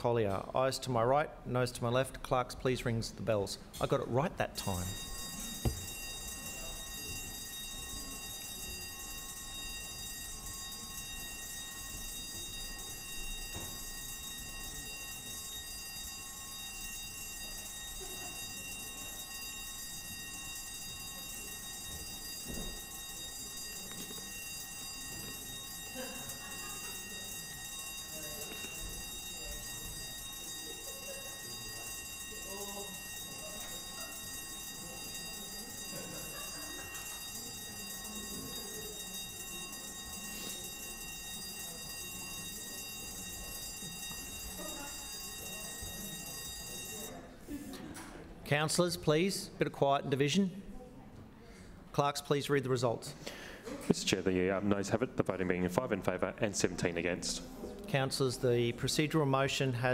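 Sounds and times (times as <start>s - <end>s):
voting bells ringing: 0.0s - 47.5s
low chatter: 0.0s - 59.9s.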